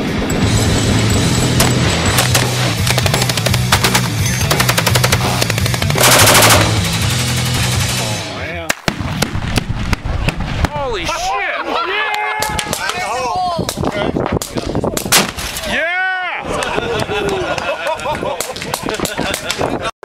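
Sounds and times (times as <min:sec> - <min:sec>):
heavy rock music: 0:00.4 - 0:08.5
machine-gun fire: 0:01.6 - 0:08.2
gunshot cracks: 0:15.0 - 0:15.6.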